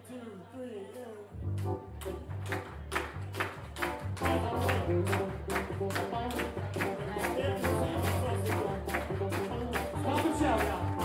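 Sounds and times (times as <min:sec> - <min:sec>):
gospel band playing upbeat groove: 0:01.6 - 0:11.0.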